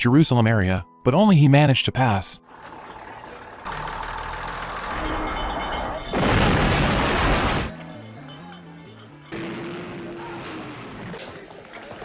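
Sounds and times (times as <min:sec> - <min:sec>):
loud bomb explosion: 0:06.2 - 0:07.7.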